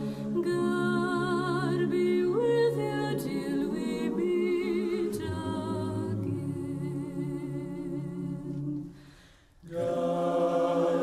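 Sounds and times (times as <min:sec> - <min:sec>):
voices singing in harmony: 0:00.0 - 0:11.0.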